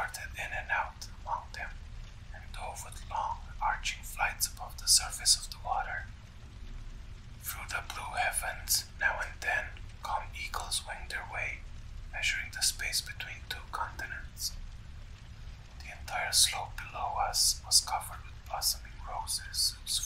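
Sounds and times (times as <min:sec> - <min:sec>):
person whispering: 0:00.0 - 0:06.2, 0:07.4 - 0:14.6, 0:15.7 - 0:20.0
faint low rumble: 0:00.0 - 0:20.0.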